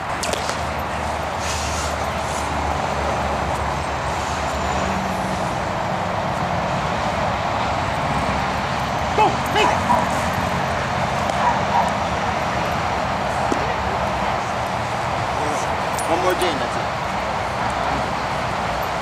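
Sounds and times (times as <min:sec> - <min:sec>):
steady background rush: 0:00.0 - 0:19.0
dog barking: 0:09.6 - 0:10.2, 0:11.4 - 0:12.0.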